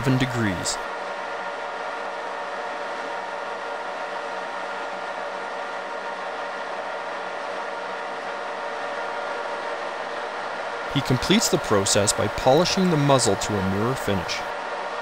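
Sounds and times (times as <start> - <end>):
metal lathe running: 10.8 - 14.6.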